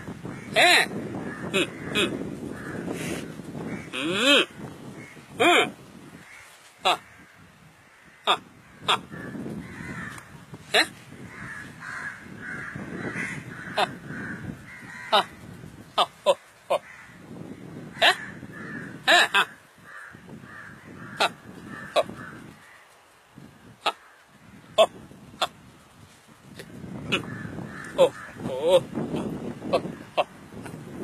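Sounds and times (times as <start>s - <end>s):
crows cawing: 0.2s - 4.0s, 6.2s - 10.4s, 11.2s - 23.0s, 23.8s - 25.0s, 27.0s - 28.6s.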